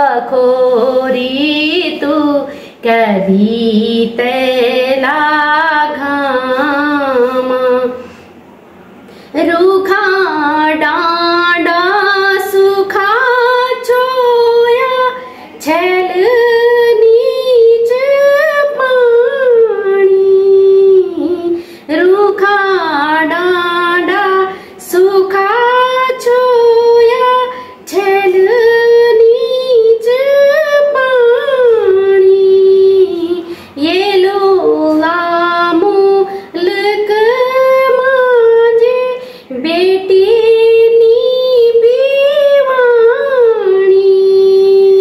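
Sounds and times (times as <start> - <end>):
woman singing unaccompanied: 0.0 - 8.2, 9.3 - 45.0.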